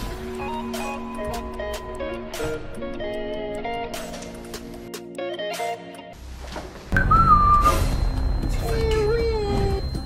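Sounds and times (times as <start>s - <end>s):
low background music: 0.0s - 10.0s
whistled note: 7.0s - 8.6s.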